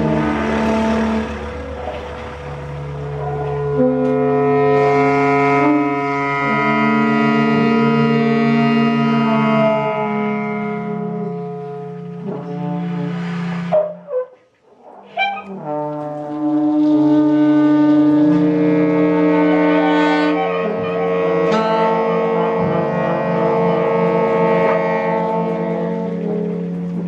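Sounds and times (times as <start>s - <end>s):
double bass: 0.0s - 27.0s
jazz horns playing held chords: 0.0s - 27.0s.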